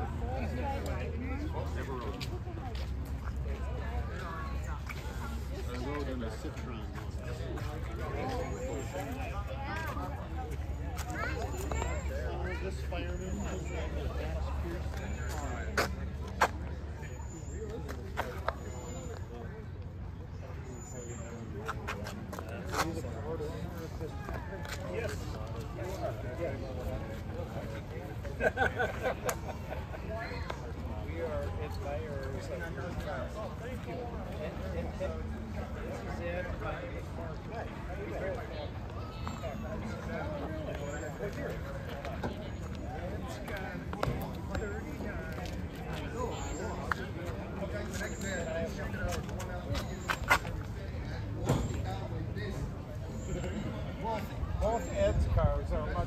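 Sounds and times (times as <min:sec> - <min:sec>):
people chattering outdoors: 0:00.0 - 0:56.0.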